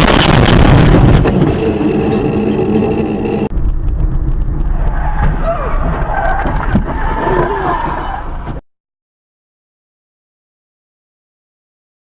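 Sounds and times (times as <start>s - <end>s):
road noise: 0.0s - 8.6s
steady droning tone: 1.0s - 4.6s.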